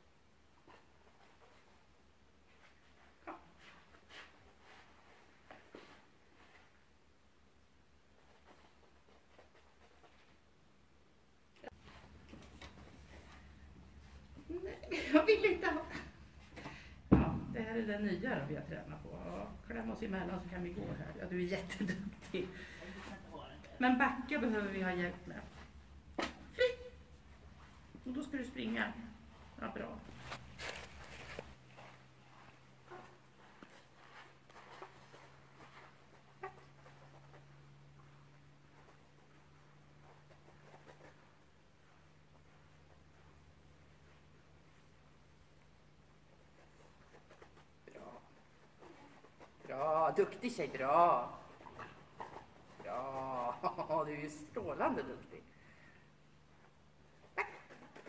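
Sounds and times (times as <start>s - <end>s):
steady low hum: 6.5s - 58.0s
footsteps on artificial turf: 27.0s - 44.4s.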